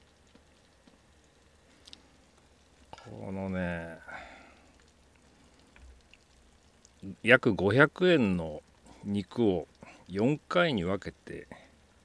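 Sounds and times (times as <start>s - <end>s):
soft ticks: 0.0s - 3.1s, 4.7s - 7.0s
broth bubbling in a pan: 0.0s - 12.0s.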